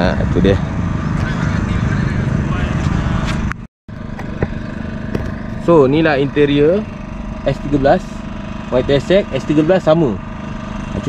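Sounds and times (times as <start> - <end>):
car engine idling: 3.9 - 11.0.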